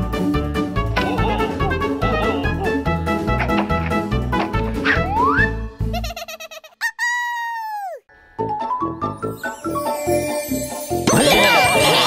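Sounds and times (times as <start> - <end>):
children's music with chiming notes: 8.4 - 12.0
tinkling trill: 9.3 - 12.0.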